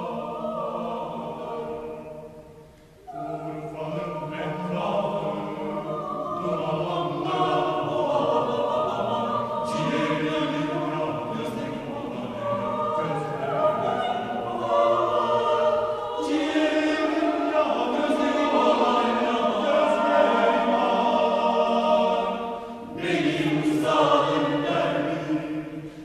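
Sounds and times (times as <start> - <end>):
mixed choir singing a cappella: 0.0 - 26.0.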